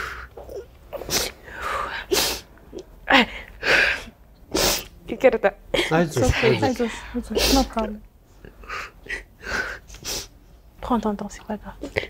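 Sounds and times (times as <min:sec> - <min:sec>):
woman sobbing: 0:05.7 - 0:07.9
woman speaking tearfully: 0:06.2 - 0:08.0.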